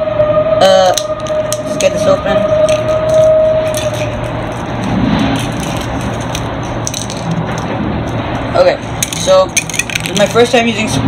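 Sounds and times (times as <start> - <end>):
steady whine: 0.0 - 11.0
truck engine rumble: 0.0 - 11.0.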